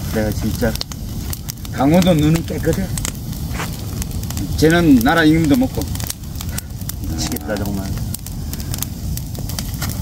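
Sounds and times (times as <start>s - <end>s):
wood fire crackling and popping: 0.0s - 10.0s.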